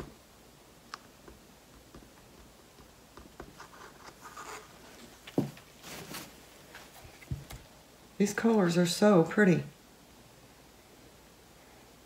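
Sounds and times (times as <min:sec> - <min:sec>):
faint rubbing and scraping: 0:03.4 - 0:07.4.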